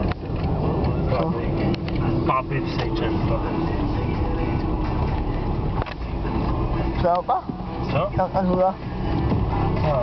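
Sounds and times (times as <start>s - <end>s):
car rumble from inside cabin: 0.0s - 10.0s.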